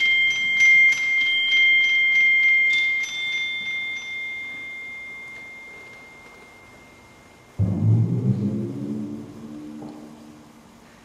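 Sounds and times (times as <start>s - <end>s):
high metal percussion ringing: 0.0s - 10.6s.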